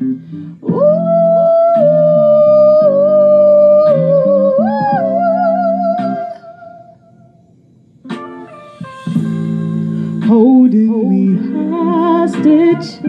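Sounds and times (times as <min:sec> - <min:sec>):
backing track low chords: 0:08.2 - 0:13.0.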